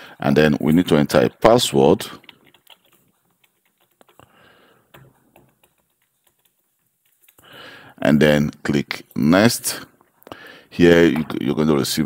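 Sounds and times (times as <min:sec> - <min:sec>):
faint keyboard typing: 0:00.6 - 0:08.0.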